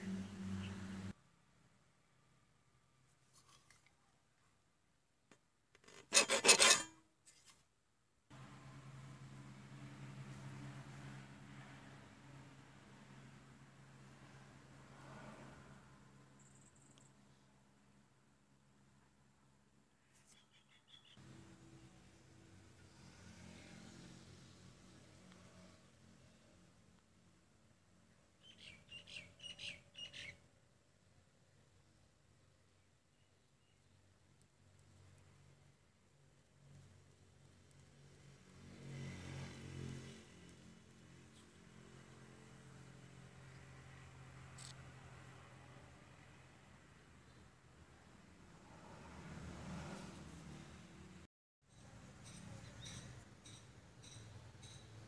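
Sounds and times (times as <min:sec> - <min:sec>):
paper rubbing: 0:06.0 - 0:07.6
bird chirping: 0:20.3 - 0:21.2, 0:28.4 - 0:30.4, 0:52.2 - 0:54.8.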